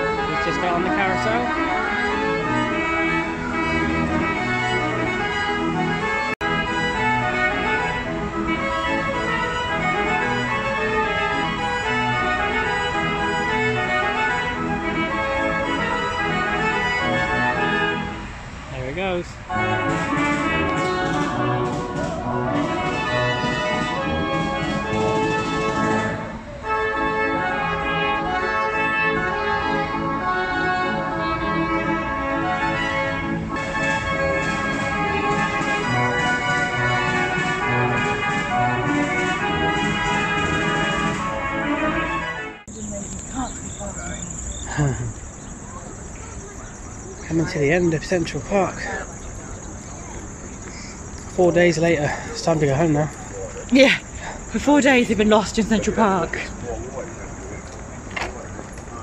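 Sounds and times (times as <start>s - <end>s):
carousel band organ music: 0.0s - 59.0s.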